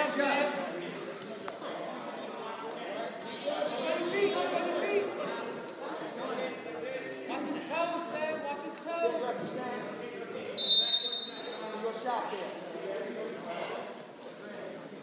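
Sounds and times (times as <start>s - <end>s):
people's voices: 0.0s - 15.0s
referee's whistle blast: 10.6s - 11.6s.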